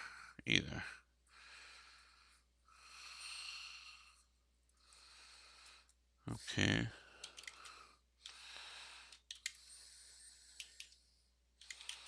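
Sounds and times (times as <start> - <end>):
soft hissy breathing: 1.3 - 6.0, 6.9 - 12.0.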